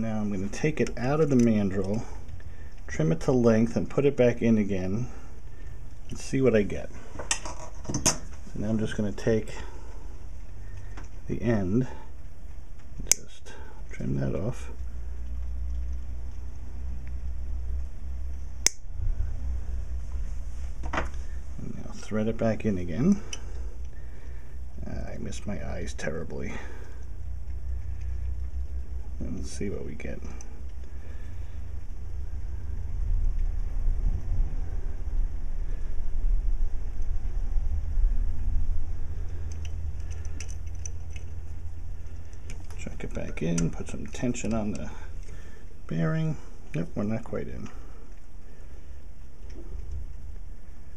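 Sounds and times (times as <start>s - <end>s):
low steady rumble: 0.0s - 50.9s
steady low hum: 0.0s - 50.9s.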